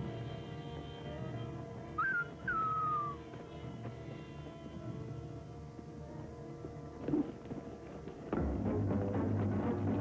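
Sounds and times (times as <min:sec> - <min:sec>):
two-note whistled call: 0:02.0 - 0:03.2.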